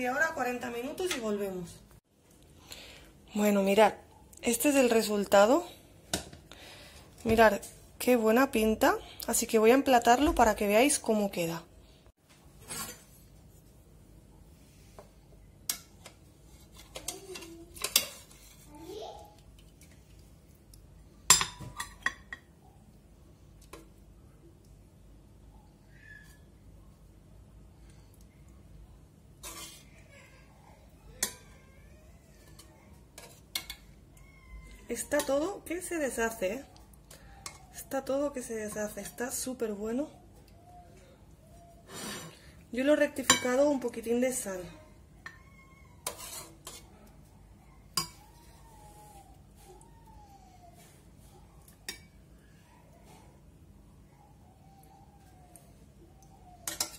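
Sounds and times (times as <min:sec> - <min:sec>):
spoon scraping pot: 0:15.8 - 0:18.7, 0:29.4 - 0:30.0, 0:32.4 - 0:33.9, 0:46.0 - 0:46.9, 0:56.6 - 0:56.9
faint high wavering voice: 0:46.8 - 0:51.7
metal spoon clinking: 0:56.6 - 0:56.9.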